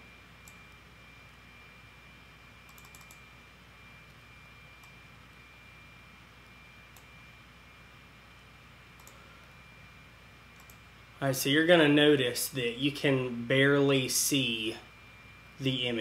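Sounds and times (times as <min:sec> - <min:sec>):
thin high whine: 0:00.0 - 0:16.0
computer mouse and keyboard clicks: 0:02.7 - 0:03.2, 0:09.0 - 0:09.2, 0:10.6 - 0:10.8.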